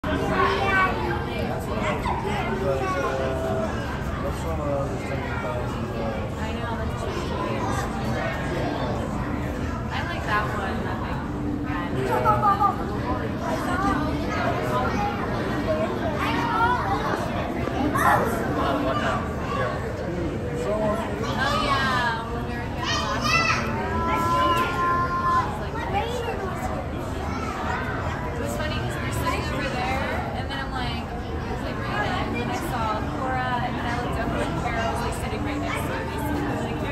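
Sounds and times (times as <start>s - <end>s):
indistinct chatter of voices: 0.0s - 36.9s
steady background noise: 0.0s - 36.9s
children's voices: 0.1s - 4.3s, 11.7s - 20.2s, 21.0s - 30.2s
children calling out: 22.8s - 26.2s.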